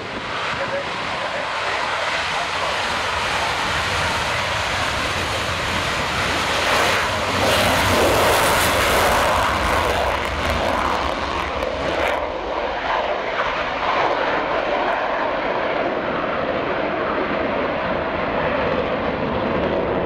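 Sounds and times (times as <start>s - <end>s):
loud jet roar: 0.0s - 20.0s.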